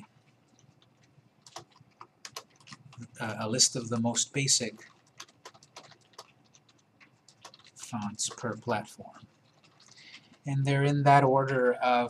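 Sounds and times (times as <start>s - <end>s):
keyboard keys clicking: 0.0s - 10.4s.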